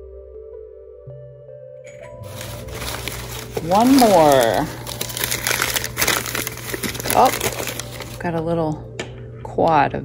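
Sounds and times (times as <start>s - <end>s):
packing paper crinkling: 2.0s - 8.4s.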